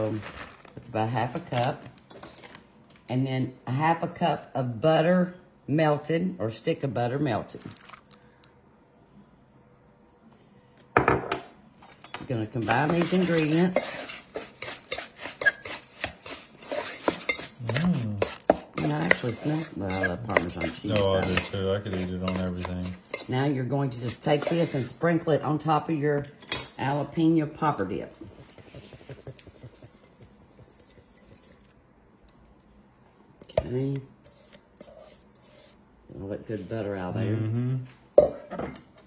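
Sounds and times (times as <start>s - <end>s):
utensil scraping metal bowl: 12.4s - 25.5s, 27.5s - 32.6s, 33.4s - 35.8s.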